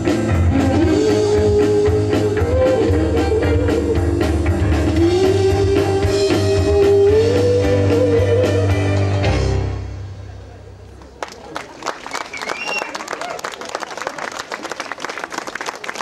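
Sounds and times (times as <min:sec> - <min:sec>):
live rock band playing: 0:00.0 - 0:10.4.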